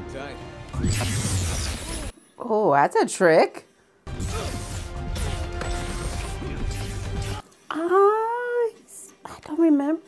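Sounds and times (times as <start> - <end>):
laser-beam blasts: 0.8 - 2.1
cartoon background score: 4.1 - 8.2.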